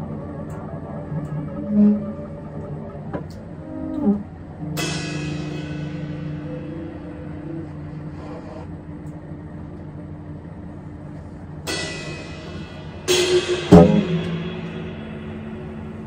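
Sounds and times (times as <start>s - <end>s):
cymbal crash: 4.8s - 8.2s, 11.6s - 16.0s.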